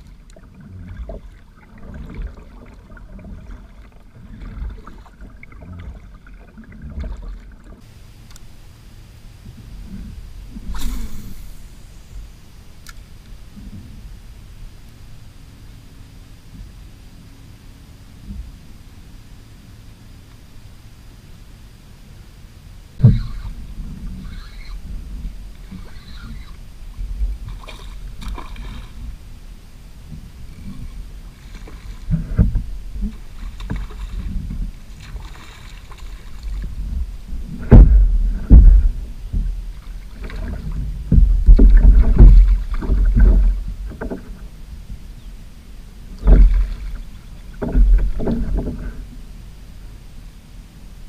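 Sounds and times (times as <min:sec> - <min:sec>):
water splashing: 0:00.0 - 0:08.4, 0:23.0 - 0:45.0, 0:46.0 - 0:49.2
thumps on plastic kayak hull: 0:37.6 - 0:39.6, 0:40.2 - 0:44.4, 0:46.2 - 0:46.8.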